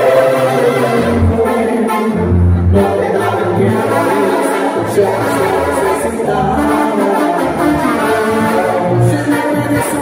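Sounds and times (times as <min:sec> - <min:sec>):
tuba and brass band: 0:00.0 - 0:10.0.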